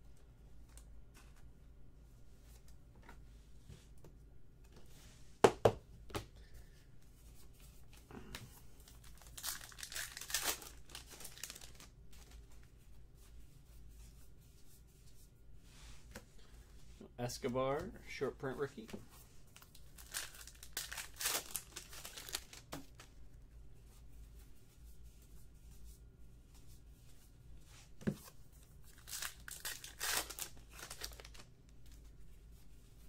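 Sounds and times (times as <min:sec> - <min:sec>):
foil wrapper tearing and crinkling: 0:09.0 - 0:11.9, 0:19.6 - 0:23.1, 0:28.9 - 0:31.5.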